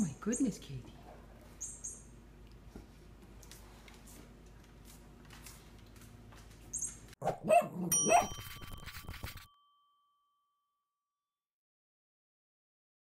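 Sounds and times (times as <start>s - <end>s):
dog barks: 7.2s - 8.4s
bell-like ding: 7.9s - 11.0s.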